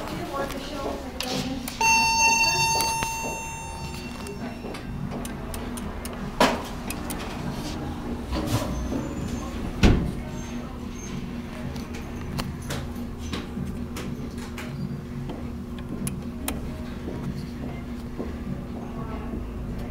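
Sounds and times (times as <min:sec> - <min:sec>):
elevator chime: 0:01.8 - 0:05.1.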